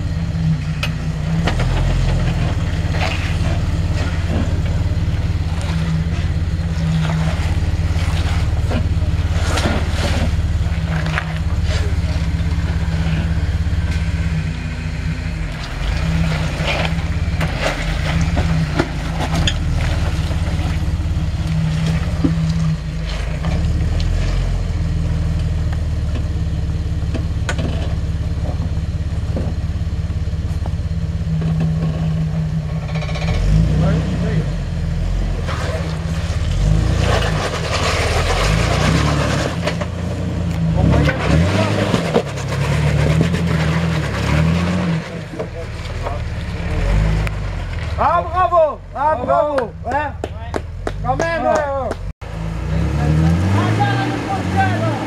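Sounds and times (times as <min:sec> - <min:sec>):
engine running at low revs: 0:00.0 - 0:55.0.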